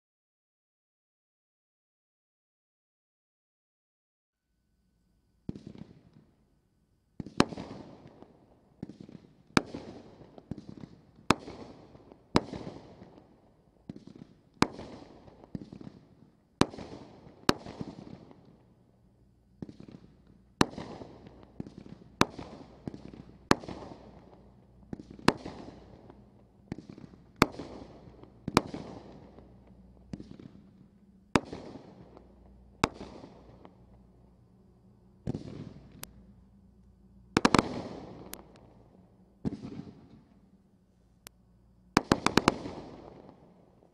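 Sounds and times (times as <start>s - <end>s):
fireworks cake bangs echoing: 13.8s - 18.4s, 19.6s - 33.8s, 35.2s - 36.0s, 39.4s - 40.2s.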